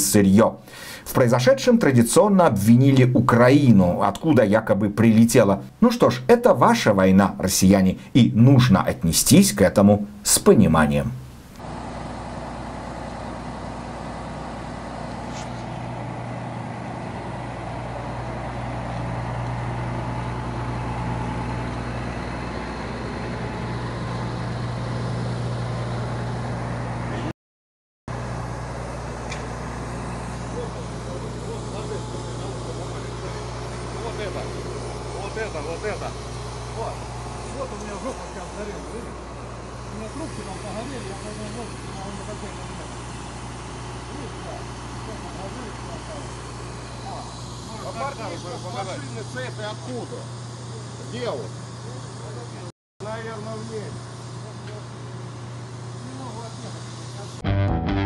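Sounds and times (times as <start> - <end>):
vehicle engine humming: 5.2 - 27.3, 28.1 - 52.7.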